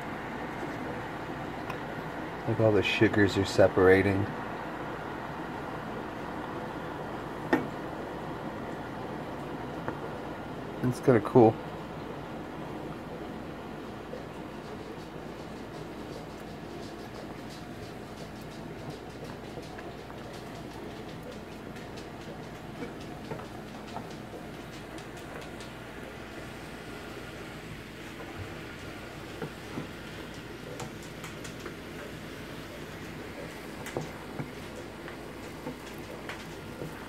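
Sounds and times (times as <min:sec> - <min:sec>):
juice boiling and bubbling: 0:00.0 - 0:37.0.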